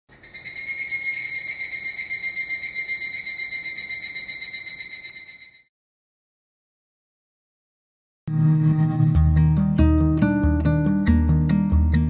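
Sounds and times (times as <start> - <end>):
cicada trilling: 0.2 - 5.5.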